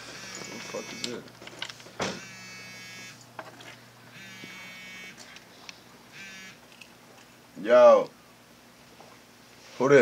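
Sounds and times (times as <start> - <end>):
mobile phone vibrating: 0.0 - 1.2, 2.1 - 3.2, 4.1 - 6.6.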